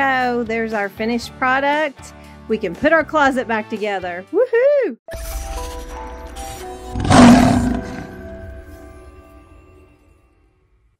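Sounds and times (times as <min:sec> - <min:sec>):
lion roar: 0:06.9 - 0:08.4.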